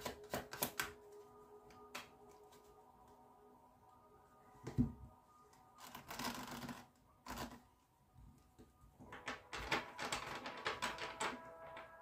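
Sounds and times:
faint steady tones: 1.0 - 12.0
cards being shuffled: 5.8 - 7.6.

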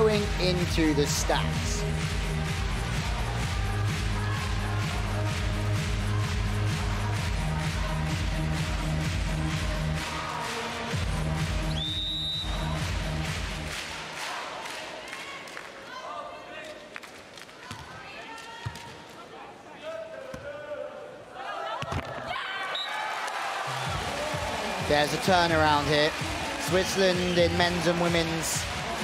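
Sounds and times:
arena music with heavy beat: 0.0 - 11.8, 12.6 - 13.7, 23.8 - 29.0
high whistle: 11.7 - 12.8.

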